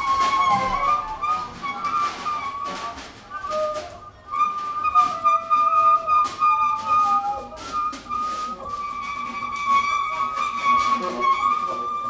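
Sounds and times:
double bass: 0:00.0 - 0:12.0.

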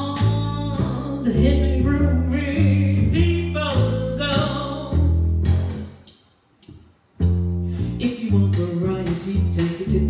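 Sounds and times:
woman singing: 0:00.0 - 0:05.2, 0:08.0 - 0:10.0
upright double bass: 0:00.0 - 0:06.0, 0:07.2 - 0:10.0.

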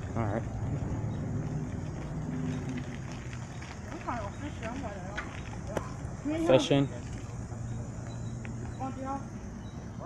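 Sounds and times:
bicycles rolling over pavement: 0:00.0 - 0:10.0.

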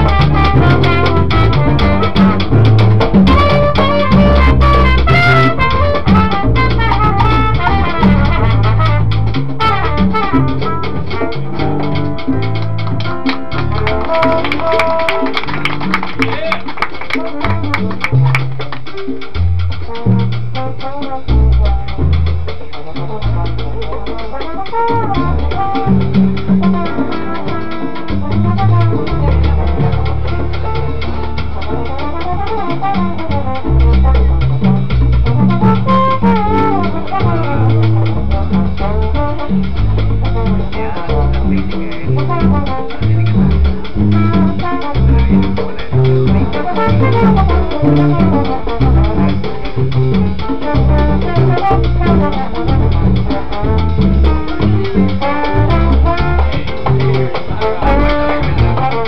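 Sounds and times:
electric bass walking: 0:00.0 - 0:09.6, 0:25.2 - 0:32.0, 0:33.1 - 0:59.0
latin percussion: 0:00.0 - 0:59.0
piano: 0:00.0 - 0:59.0
trombone melody: 0:00.0 - 0:59.0.

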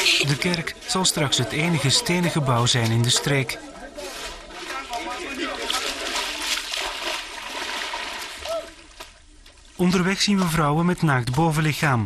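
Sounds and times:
water rushing and splashing: 0:00.0 - 0:10.8.

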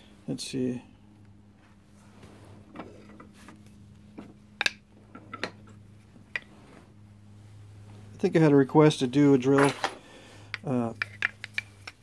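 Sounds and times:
low steady hum: 0:00.0 - 0:12.0
tools clicking and knocking: 0:09.6 - 0:12.0.

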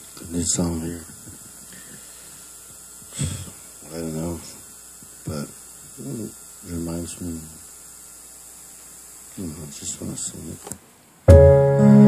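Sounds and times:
faint low mains hum: 0:00.0 - 0:12.0
steady hiss: 0:00.0 - 0:12.0.

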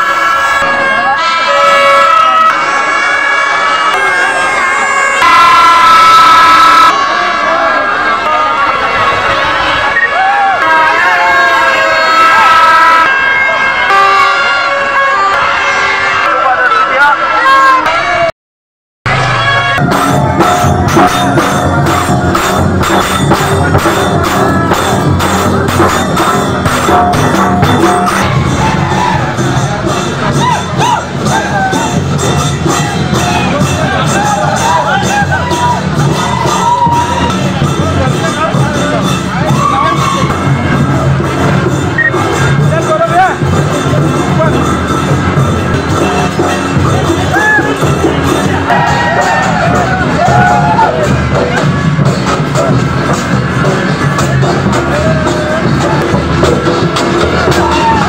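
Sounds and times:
plastic toy horns blowing: 0:00.0 - 0:07.2
crowd voices: 0:00.0 - 0:18.3, 0:19.1 - 0:58.0
music: 0:00.0 - 0:18.3, 0:19.1 - 0:58.0.

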